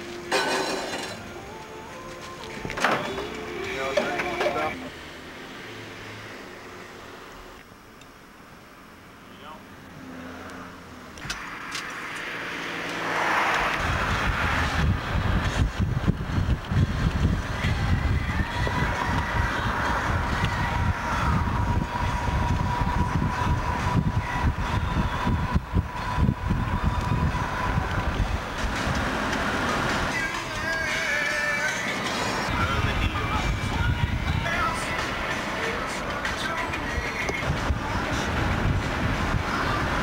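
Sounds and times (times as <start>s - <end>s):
car road noise: 0.0s - 40.0s
wind rumbling on microphone: 11.2s - 30.3s, 32.4s - 35.0s, 36.6s - 40.0s.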